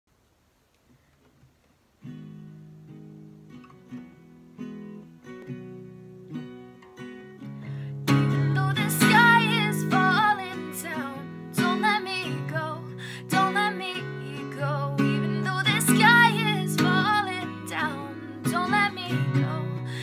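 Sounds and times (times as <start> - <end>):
acoustic guitar strumming: 2.0 - 20.0
young woman singing: 8.1 - 20.0.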